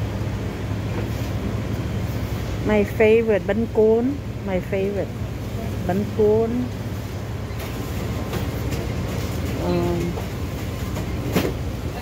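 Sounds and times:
low shop background rumble: 0:00.0 - 0:12.0.

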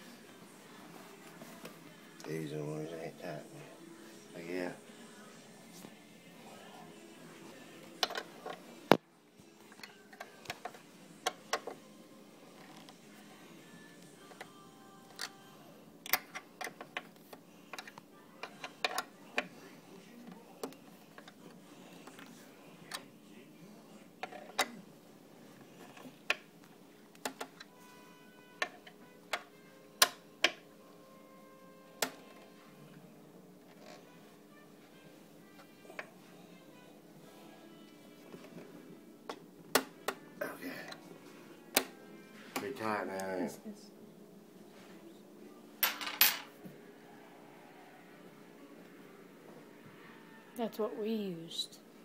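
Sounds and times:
faint background music: 0:00.0 - 0:52.0.

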